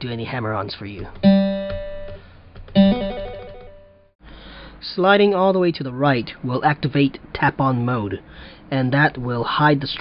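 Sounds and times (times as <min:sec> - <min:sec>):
acoustic guitar note plucked: 0:01.2 - 0:02.1.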